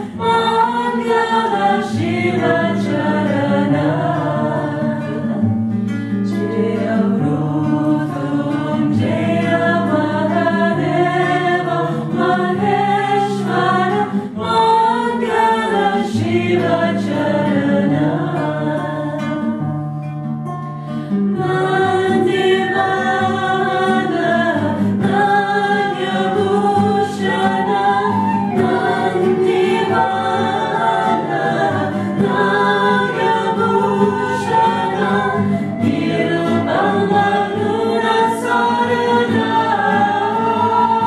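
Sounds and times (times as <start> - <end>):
women singing together: 0.0 - 19.8, 21.2 - 41.0
strummed acoustic guitar: 0.0 - 41.0.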